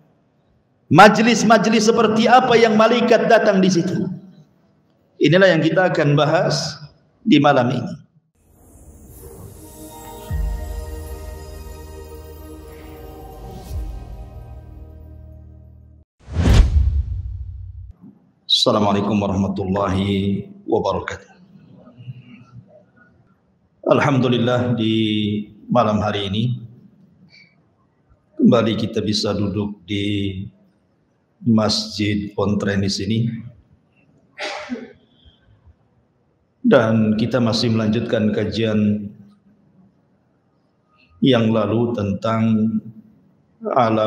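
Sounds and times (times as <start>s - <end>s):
whoosh: 16.2s - 17.9s.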